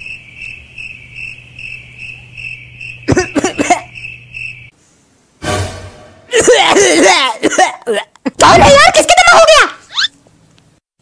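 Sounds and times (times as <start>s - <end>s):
crickets chirping: 0.0s - 4.8s.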